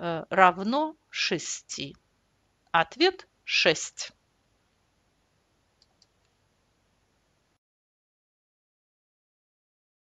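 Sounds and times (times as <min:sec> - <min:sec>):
faint short clicks: 0:05.8 - 0:06.4.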